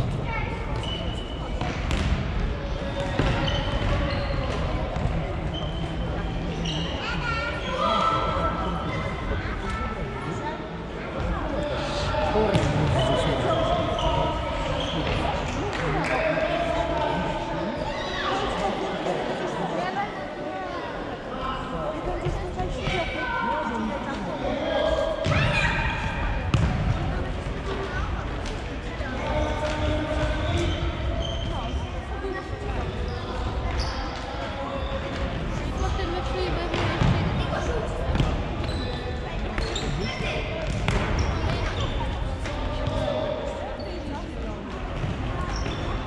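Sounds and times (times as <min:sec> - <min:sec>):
players' voices: 0:00.0 - 0:46.0.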